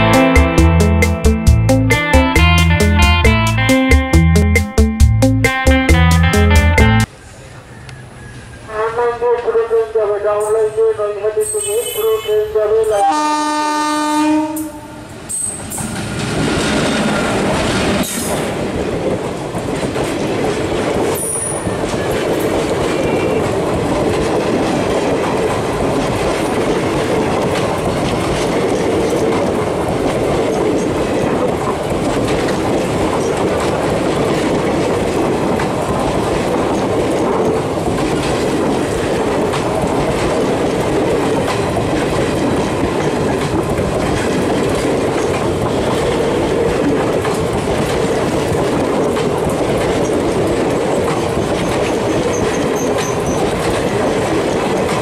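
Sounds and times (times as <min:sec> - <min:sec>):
train wheels rolling on rails: 0:14.4 - 0:55.0.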